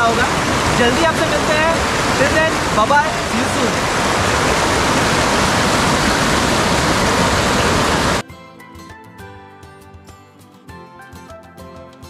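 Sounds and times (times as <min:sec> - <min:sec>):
river rushing loudly: 0:00.0 - 0:08.2
music with plucked notes: 0:08.2 - 0:12.0.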